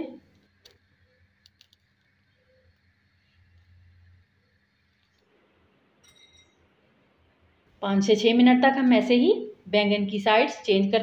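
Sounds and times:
tiny clicks: 1.4s - 2.9s.

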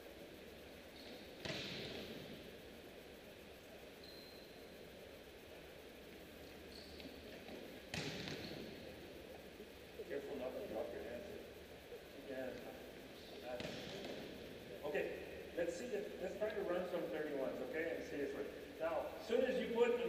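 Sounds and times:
volleyball impacts echoing: 1.0s - 2.5s, 6.5s - 9.4s, 13.4s - 15.6s
faint squeaks: 3.9s - 4.8s, 6.4s - 7.5s.

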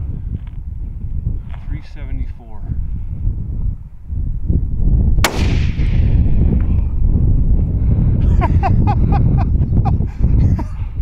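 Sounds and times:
rifle shot echoing: 5.2s - 6.6s.

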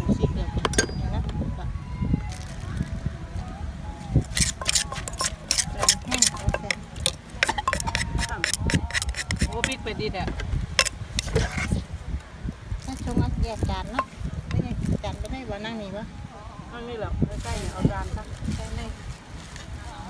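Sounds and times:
pestle knocking in mortar: 4.3s - 11.6s.

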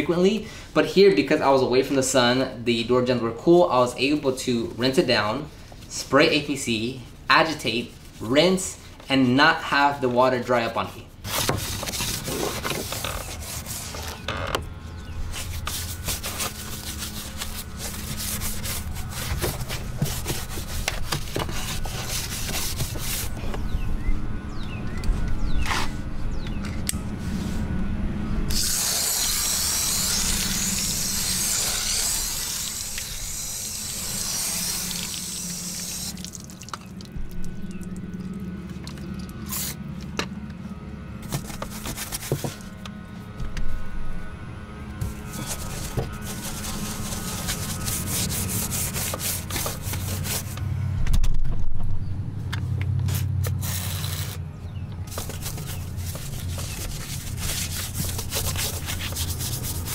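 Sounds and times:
brush scrubbing metal: 11.5s - 14.2s, 15.2s - 23.4s, 28.5s - 36.3s, 45.0s - 50.6s, 55.1s - 59.9s
hose nozzle spraying: 28.5s - 36.6s.

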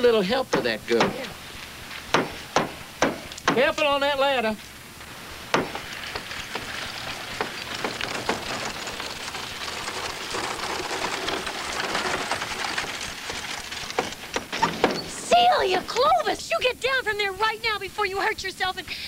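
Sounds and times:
person speaking: 0.0s - 1.4s, 15.1s - 18.2s
buggy wheels and hooves crunching: 0.0s - 18.4s
sharp knocks: 0.5s - 1.4s, 2.1s - 3.9s, 5.5s - 9.0s.

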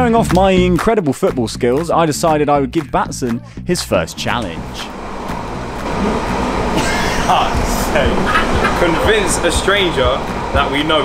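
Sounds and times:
underground train rumbling: 1.4s - 11.0s.

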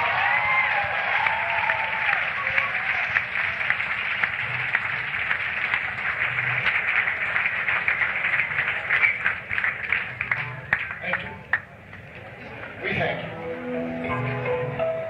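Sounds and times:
audience shouts: 0.0s - 3.7s
audience clapping: 0.0s - 12.3s.

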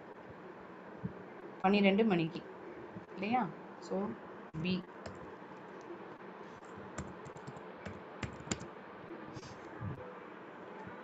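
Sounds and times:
computer keyboard typing: 5.0s - 5.3s, 6.6s - 8.7s.

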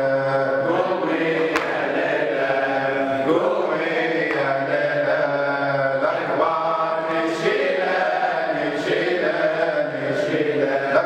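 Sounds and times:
men chanting: 0.0s - 11.0s
person singing into a microphone: 3.1s - 11.0s.

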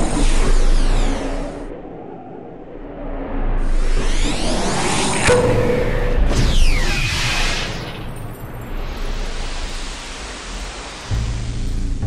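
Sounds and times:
synthetic noise wash: 0.0s - 12.0s.

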